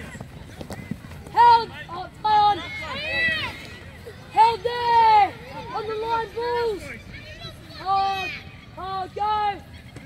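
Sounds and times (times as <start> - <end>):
spectators shouting encouragement: 1.3 - 10.0.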